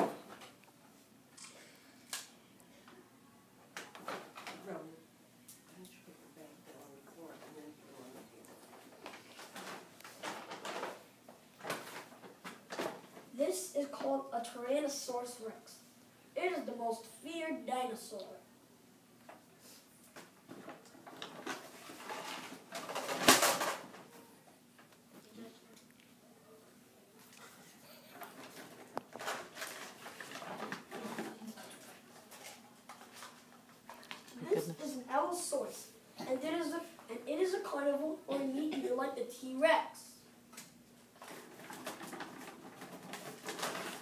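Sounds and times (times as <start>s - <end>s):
paper bag rustling and crinkling: 28.4s - 34.0s, 41.2s - 44.0s
paper bag rustling: 41.2s - 44.0s.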